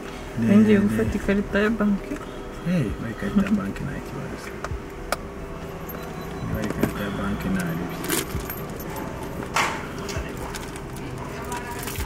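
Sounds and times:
metallic jingle: 5.6s - 10.8s.

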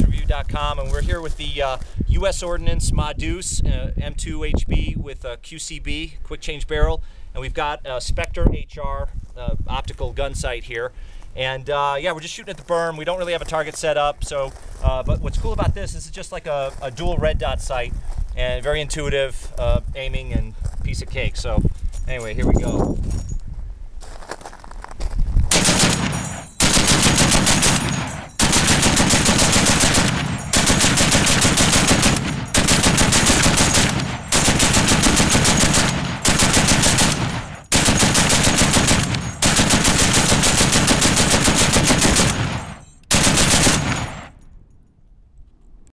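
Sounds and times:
heavy machine gun firing bursts: 25.5s - 44.3s.

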